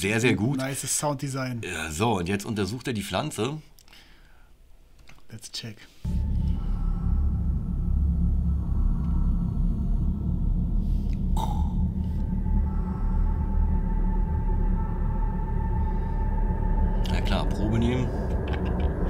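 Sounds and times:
steady high tone: 6.1s - 18.5s
deep rumbling drone: 6.1s - 19.0s.

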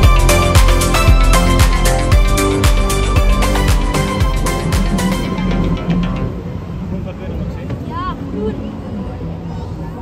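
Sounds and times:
background music: 0.0s - 6.8s.

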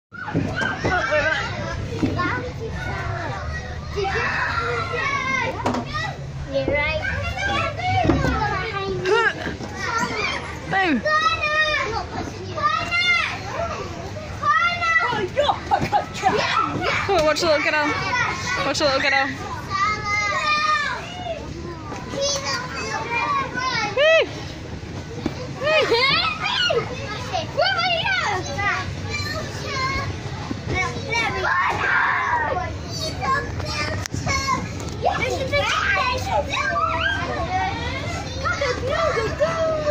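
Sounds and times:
children shouting and squealing: 0.1s - 39.9s.

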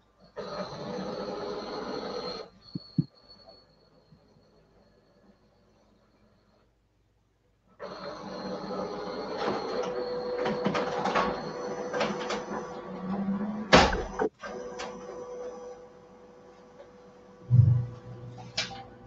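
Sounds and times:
copier whirring: 7.8s - 18.9s
copier clacking loudly: 8.0s - 12.7s.

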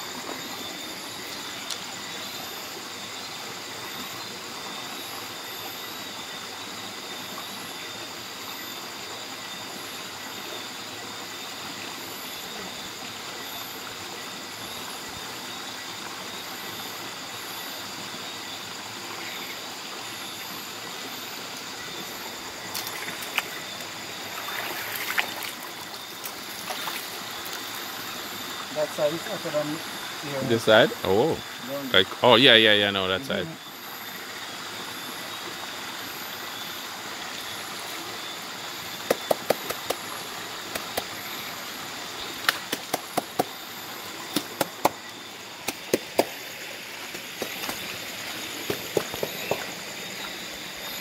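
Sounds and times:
flowing water rushing: 0.0s - 51.0s
night insects trilling: 0.0s - 51.0s.

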